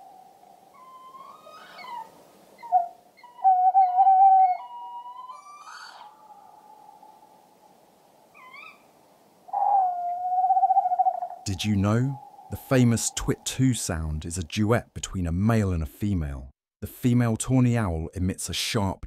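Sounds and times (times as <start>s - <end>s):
owl hooting: 0.0s - 7.2s, 8.3s - 8.9s, 9.5s - 13.4s
higher owl call: 0.0s - 7.4s, 8.3s - 8.9s, 9.5s - 13.4s.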